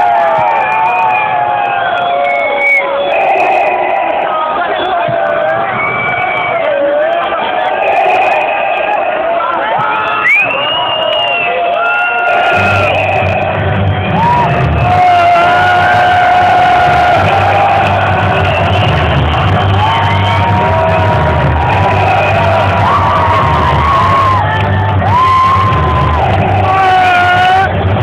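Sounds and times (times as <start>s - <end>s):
crowd shouting and whooping: 0.0s - 28.0s
electronic dance music: 2.5s - 6.1s, 12.2s - 28.0s.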